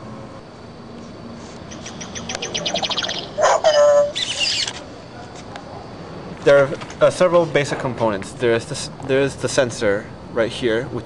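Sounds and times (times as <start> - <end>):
fast high chirping trill: 1.7 - 4.8
short steady-pitched call: 1.7 - 4.8.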